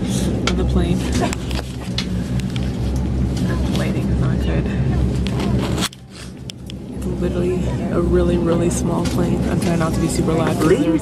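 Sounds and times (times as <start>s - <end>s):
aircraft cabin drone: 0.0s - 11.0s
voices: 3.3s - 11.0s.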